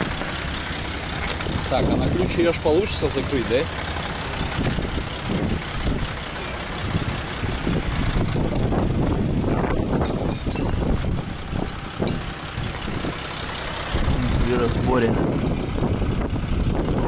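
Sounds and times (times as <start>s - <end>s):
tow truck engine running under load: 0.0s - 17.0s.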